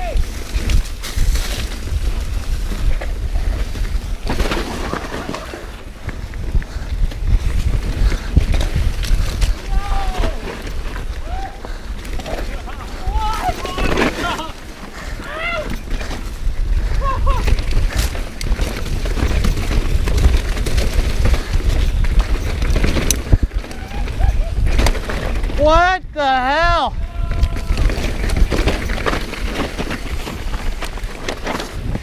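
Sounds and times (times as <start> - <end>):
bike knocking and rattling: 0.0 - 32.0
bike tyres rumbling on dirt: 0.0 - 32.0
wind buffeting microphone: 0.0 - 32.0.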